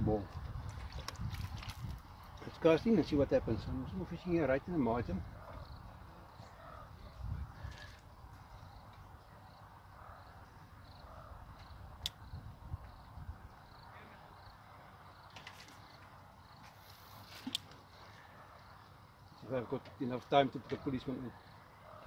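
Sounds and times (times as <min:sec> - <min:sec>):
faint sharp clicks: 0:11.6 - 0:12.2.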